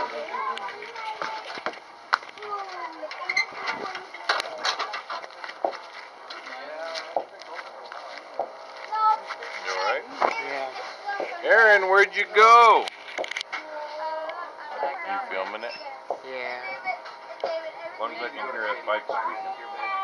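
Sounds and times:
people talking: 0:00.0 - 0:01.8, 0:13.6 - 0:20.0.

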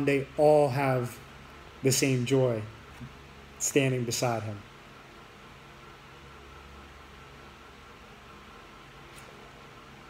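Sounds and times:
microphone hiss: 0:00.0 - 0:10.0.

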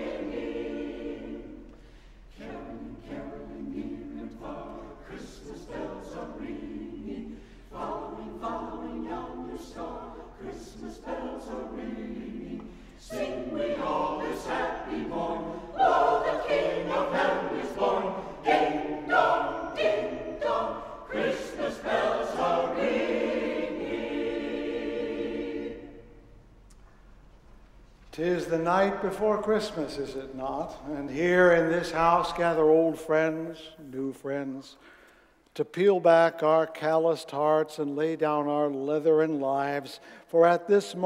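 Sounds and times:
church choir singing: 0:00.0 - 0:26.4, 0:28.2 - 0:35.2, 0:35.8 - 0:41.0.

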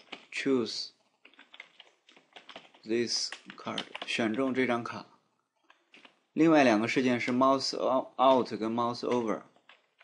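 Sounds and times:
typing on computer keyboard: 0:00.0 - 0:00.4, 0:01.0 - 0:04.6, 0:05.6 - 0:06.2, 0:07.1 - 0:10.0.

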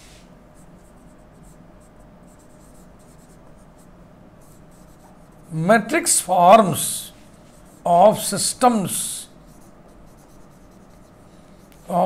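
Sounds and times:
marker writing on whiteboard: 0:00.6 - 0:05.6, 0:07.4 - 0:12.0.

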